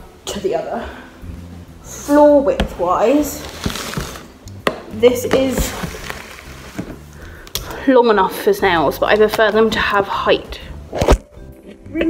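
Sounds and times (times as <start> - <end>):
woman speaking: 0.3 - 1.1, 1.9 - 3.5, 4.9 - 5.9, 7.7 - 10.7
object knocking on stone countertop: 4.6 - 5.9.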